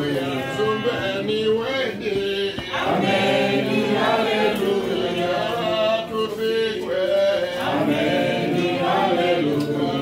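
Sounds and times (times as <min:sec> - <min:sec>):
crowd singing a hymn: 0:00.0 - 0:10.0.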